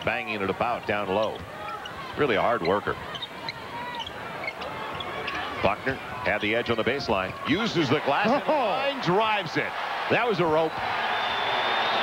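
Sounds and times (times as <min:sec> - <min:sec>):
arena crowd noise: 0:00.0 - 0:12.0
sneakers squeaking on court: 0:01.2 - 0:05.6.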